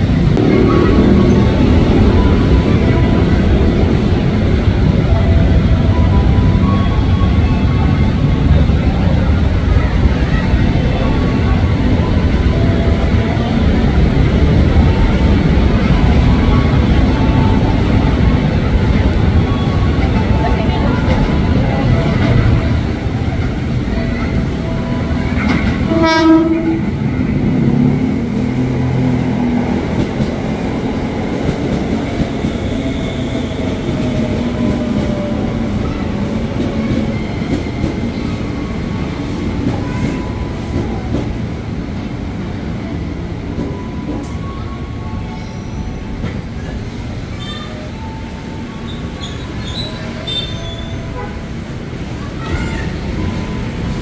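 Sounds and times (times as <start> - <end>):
train wheels on rails: 0.0 - 54.0
train horn blast: 25.8 - 27.0, 50.3 - 51.5.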